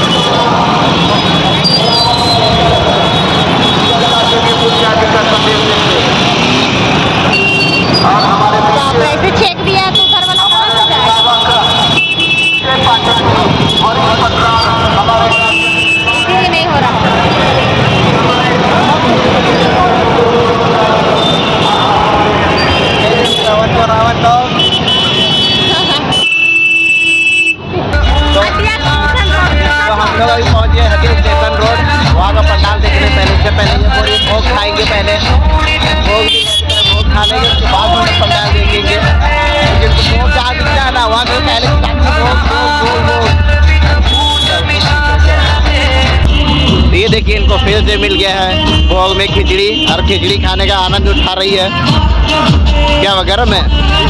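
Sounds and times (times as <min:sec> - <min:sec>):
crowd chatter: 0:00.0 - 0:54.0
many overlapping voices: 0:00.0 - 0:54.0
motor vehicles running: 0:00.0 - 0:54.0
loud music with heavy bass: 0:27.9 - 0:54.0.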